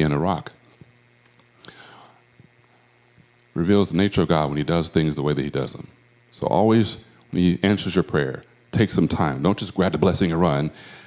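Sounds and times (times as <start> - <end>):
faint breath into microphone: 1.6 - 2.3, 10.8 - 11.0.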